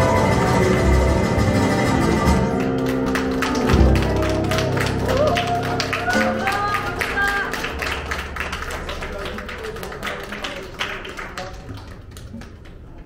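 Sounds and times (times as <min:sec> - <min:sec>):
audience applause: 0:00.0 - 0:13.0.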